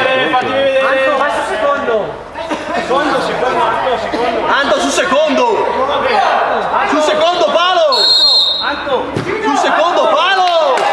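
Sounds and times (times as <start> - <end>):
referee's whistle: 7.9 - 8.9.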